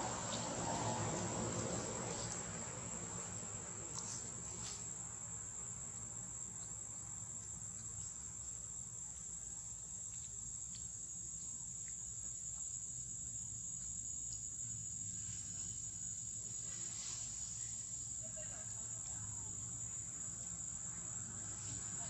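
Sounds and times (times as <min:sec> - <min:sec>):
faint ticks: 0:09.0 - 0:14.6.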